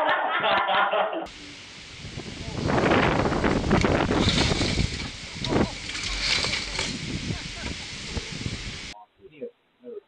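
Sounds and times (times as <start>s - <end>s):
wind buffeting microphone: 1.3s - 9.0s
people's voices: 4.6s - 9.4s.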